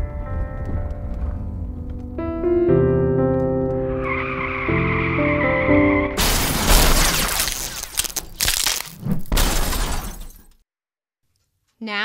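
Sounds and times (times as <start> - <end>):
car crash smash: 6.2 - 10.6
debris clattering: 6.2 - 10.6
glass breaking: 6.2 - 10.6.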